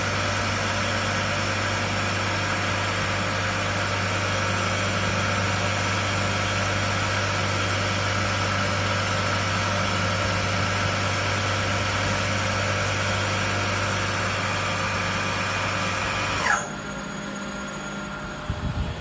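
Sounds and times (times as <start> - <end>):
winding machine hum and whine: 0.0 - 19.0.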